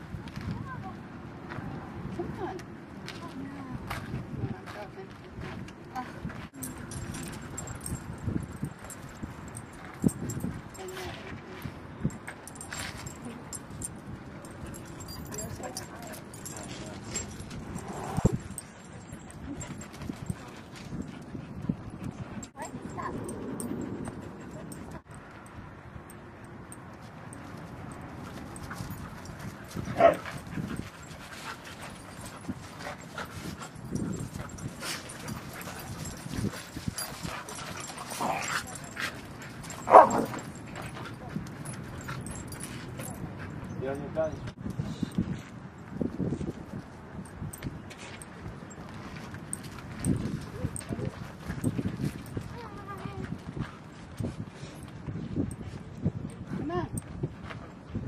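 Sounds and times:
dogs yipping and barking: 28.6s - 43.6s.

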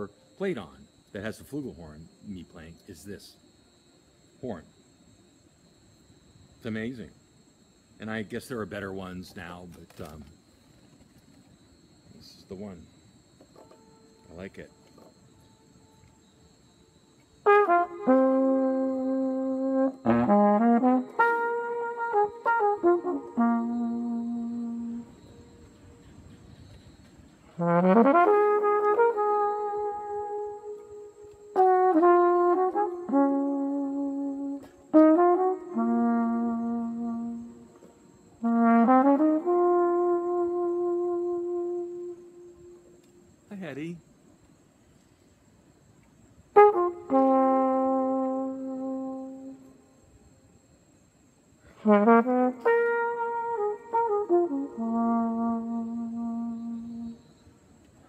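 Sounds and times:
flugelhorn playing long notes: 13.6s - 26.1s, 27.5s - 43.3s, 46.5s - 49.9s, 51.7s - 57.5s.

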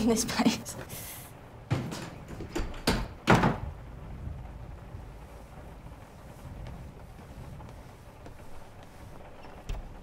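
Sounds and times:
door banging shut: 1.7s - 3.7s
door knocks: 1.7s - 3.7s.

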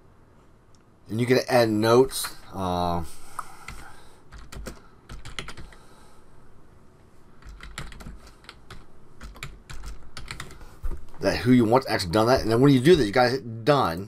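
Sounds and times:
computer keyboard typing: 3.7s - 5.8s, 7.4s - 10.6s.

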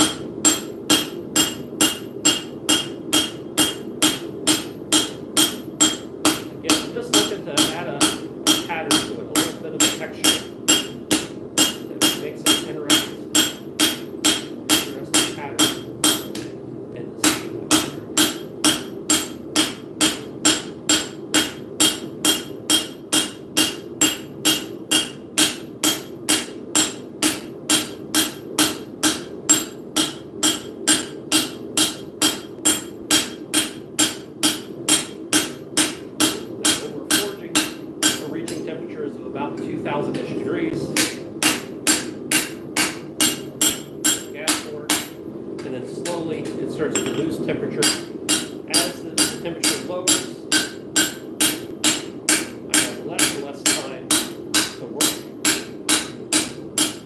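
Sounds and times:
hammer striking steel on anvil: 0.0s - 16.6s, 17.2s - 38.7s, 41.0s - 57.0s.

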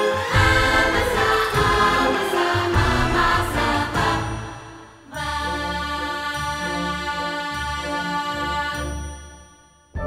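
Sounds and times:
orchestral waltz music: 0.0s - 10.0s.

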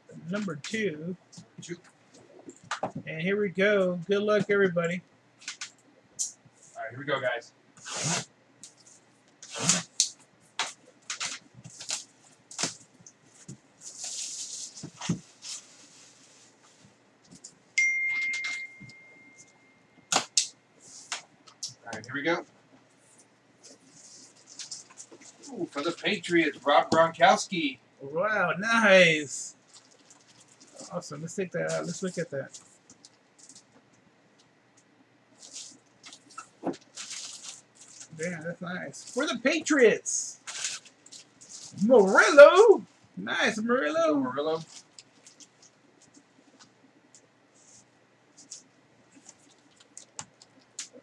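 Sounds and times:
high-pitched ding: 17.8s - 19.8s
plastic wrap crinkling and tearing: 29.6s - 31.0s, 35.4s - 38.2s, 38.9s - 39.4s, 40.4s - 42.2s, 44.6s - 46.7s.

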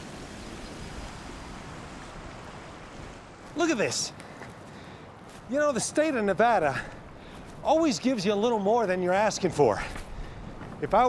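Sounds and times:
stream running over rocks: 0.0s - 10.0s.

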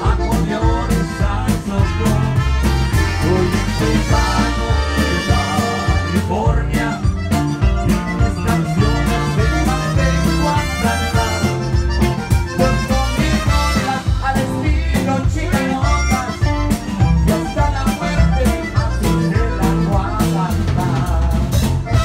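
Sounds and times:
accordion: 0.0s - 22.0s
bass: 0.0s - 22.0s
drum kit: 0.0s - 22.0s
keyboard: 0.0s - 22.0s.

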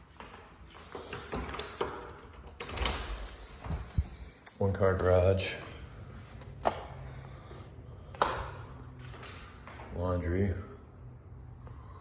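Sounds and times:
door opening: 1.2s - 4.4s.

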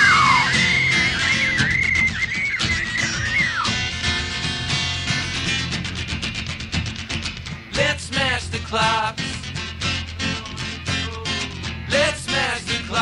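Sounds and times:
high lead melody bending: 0.0s - 4.6s
rock band instrumental: 0.0s - 12.3s.

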